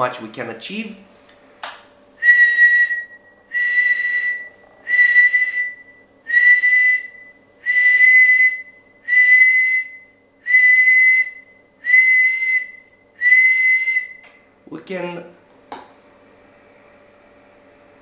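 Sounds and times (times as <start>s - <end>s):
person whistling high note: 2.2s - 14.3s.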